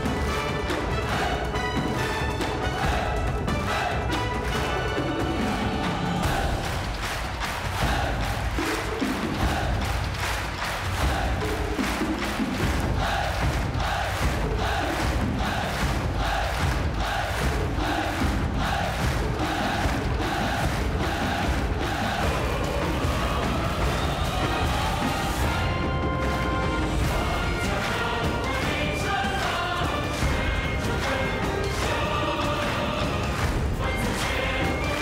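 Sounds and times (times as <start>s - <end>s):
many voices shouting together: 0.0s - 1.8s, 2.4s - 10.0s, 10.6s - 11.6s, 12.8s - 35.0s
large drums beaten: 0.0s - 35.0s
music: 0.0s - 35.0s.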